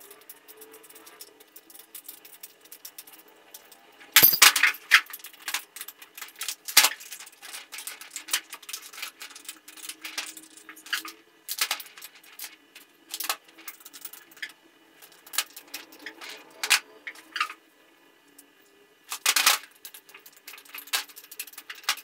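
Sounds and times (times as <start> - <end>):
metal parts clinking: 4.2 - 4.8.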